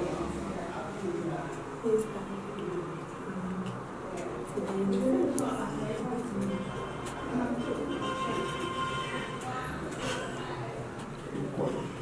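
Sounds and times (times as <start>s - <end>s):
woman speaking in short phrases: 4.5s - 6.7s.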